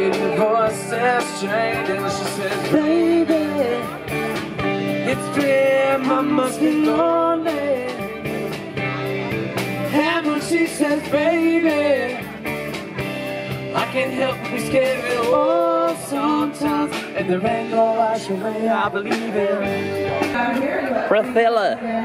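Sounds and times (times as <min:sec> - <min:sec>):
lead vocalist singing: 0:00.0 - 0:08.9, 0:09.8 - 0:12.8, 0:13.5 - 0:22.0
drums: 0:00.0 - 0:22.0
electric and acoustic guitars: 0:00.0 - 0:22.0.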